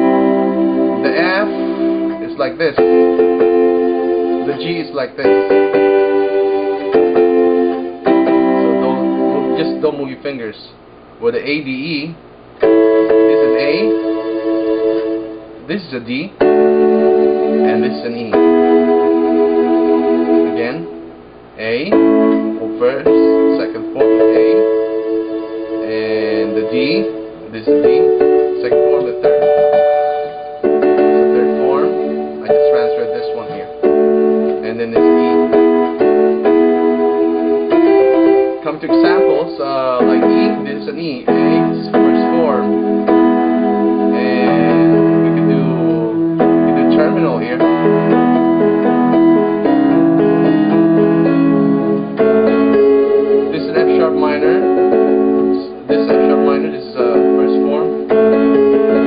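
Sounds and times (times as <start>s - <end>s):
electronic keyboard chords: 0.0s - 10.5s, 11.1s - 59.0s.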